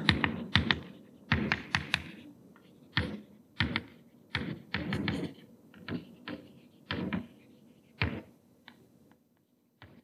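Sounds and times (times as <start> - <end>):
chalk tapping on blackboard: 0.0 - 2.2, 2.9 - 8.8.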